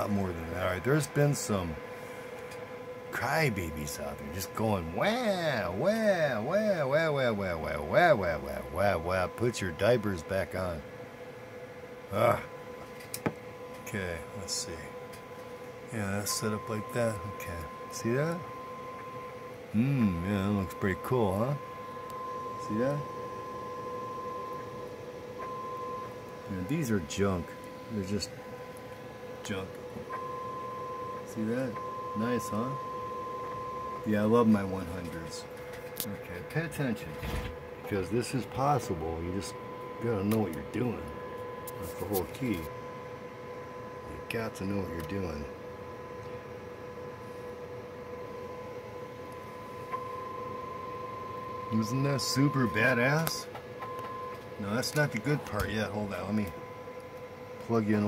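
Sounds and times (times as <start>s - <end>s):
fainter lower tone: 0.0s - 10.8s, 13.6s - 37.2s, 37.8s - 58.0s
steady test tone: 0.0s - 47.1s, 47.8s - 58.0s.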